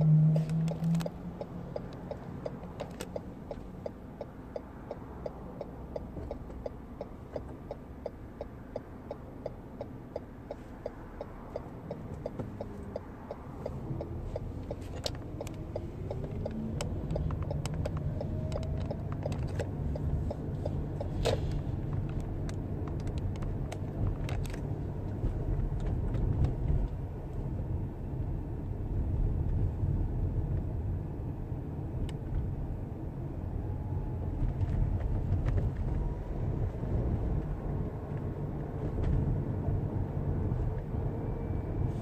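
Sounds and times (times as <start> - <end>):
engine and tyre rumble: 0.0 - 42.0.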